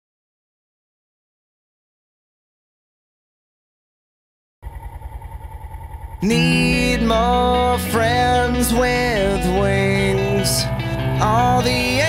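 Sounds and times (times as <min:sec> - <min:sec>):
motorcycle engine idling: 0:04.6 - 0:07.8.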